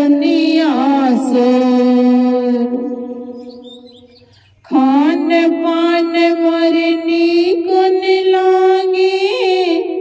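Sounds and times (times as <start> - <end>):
woman singing long note: 4.7 - 10.0.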